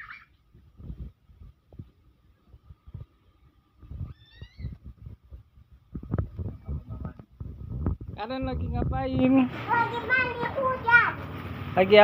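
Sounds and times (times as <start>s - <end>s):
muffled thumps and rumble: 0.6s - 3.2s, 4.8s - 9.3s.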